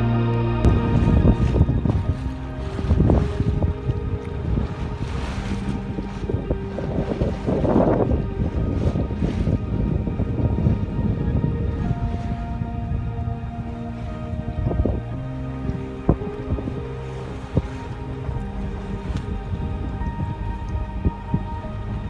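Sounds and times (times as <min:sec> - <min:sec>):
soft ambient music: 0:00.0 - 0:22.0
water rushing past hull: 0:00.0 - 0:22.0
wind buffeting microphone: 0:00.0 - 0:22.0.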